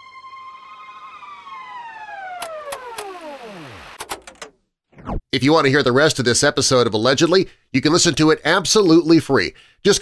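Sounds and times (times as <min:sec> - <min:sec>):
electronic tone sliding down: 0:00.0 - 0:04.0, 0:04.9 - 0:05.3
sharp clicks: 0:02.4 - 0:03.2.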